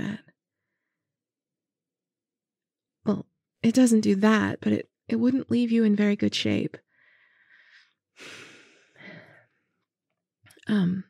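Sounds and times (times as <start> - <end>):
short breath: 7.0 - 9.5.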